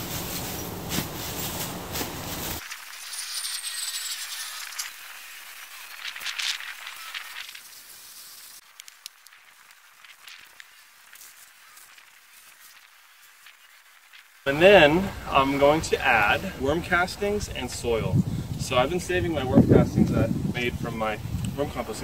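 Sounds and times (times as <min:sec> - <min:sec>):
straw rustling: 0:00.0 - 0:03.1, 0:04.3 - 0:18.0
quiet outdoor ambience: 0:00.0 - 0:22.0.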